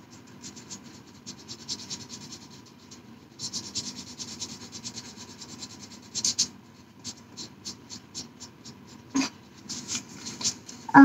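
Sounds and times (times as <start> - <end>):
felt-tip pen scratching on paper: 0.0 - 10.7.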